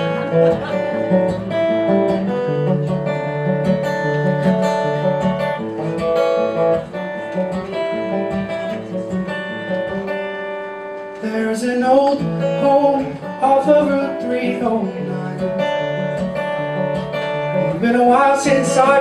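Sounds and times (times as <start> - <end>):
acoustic guitar picking: 0.0 - 19.0
person singing: 11.2 - 15.8, 17.6 - 19.0.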